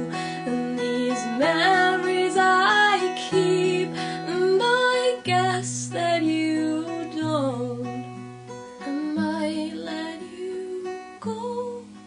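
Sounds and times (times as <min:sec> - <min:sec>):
person singing: 0:00.0 - 0:08.1, 0:08.8 - 0:12.0
acoustic guitar strumming: 0:00.0 - 0:12.0.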